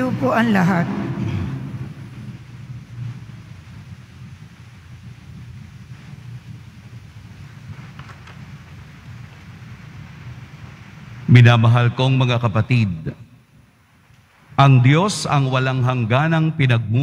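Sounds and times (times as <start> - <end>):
low church room rumble: 0.0 - 17.0.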